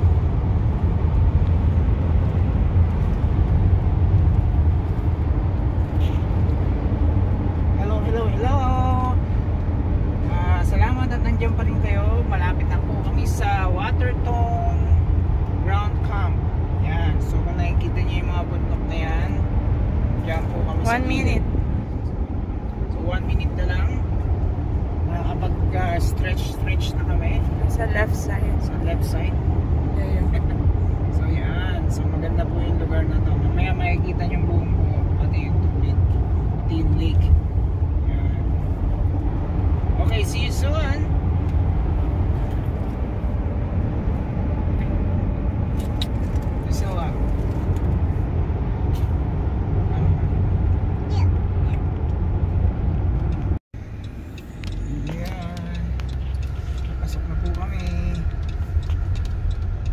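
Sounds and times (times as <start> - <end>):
car cabin road drone: 0.0 - 59.9.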